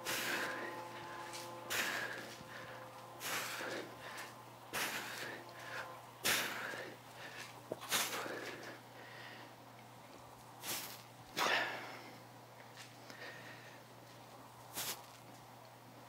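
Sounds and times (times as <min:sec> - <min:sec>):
sharp forceful exertion breaths: 0:00.0 - 0:09.6, 0:10.6 - 0:12.2.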